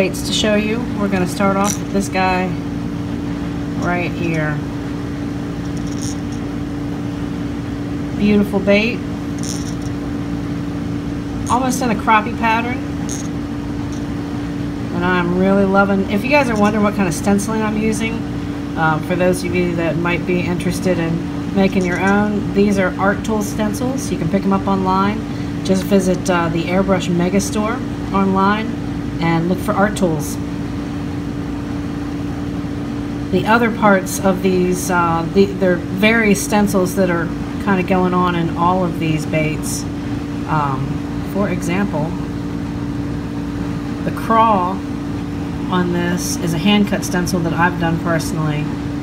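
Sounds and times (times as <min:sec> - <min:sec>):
machine hum: 0:00.0 - 0:49.0.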